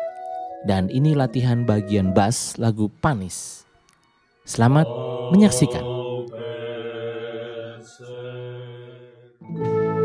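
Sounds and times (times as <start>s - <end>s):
male choir singing held notes: 4.5s - 9.4s.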